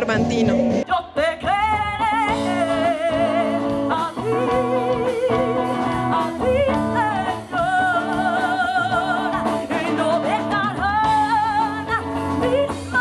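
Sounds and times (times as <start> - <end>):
live band bass and drums: 0.0 - 13.0
woman singing: 0.8 - 13.0.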